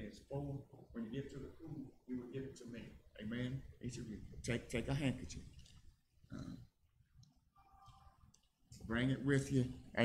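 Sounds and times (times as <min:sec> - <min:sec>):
man talking: 0:00.0 - 0:05.6, 0:08.8 - 0:10.0.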